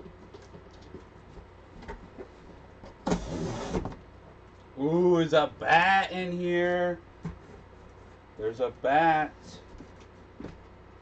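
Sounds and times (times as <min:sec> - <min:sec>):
packing material scraping in box: 0:03.0 - 0:03.9.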